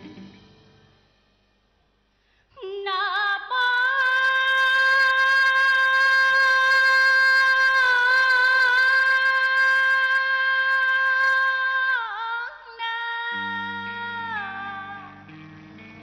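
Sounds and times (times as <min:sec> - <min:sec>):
woman singing long high note: 0:02.6 - 0:15.3.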